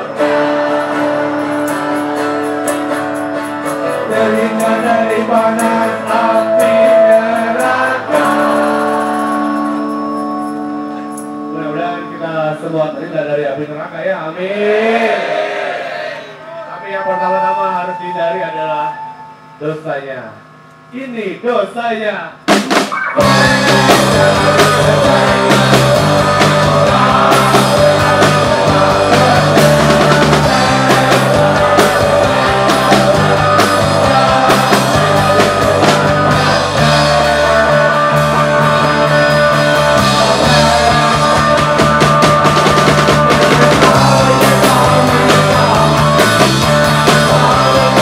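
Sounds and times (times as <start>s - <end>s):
electric guitars: 0.0s - 13.4s, 22.4s - 48.0s
live rock band: 0.0s - 13.4s, 22.3s - 48.0s
man's voice: 11.5s - 15.0s, 16.3s - 22.4s, 23.2s - 48.0s
drum kit: 22.4s - 48.0s.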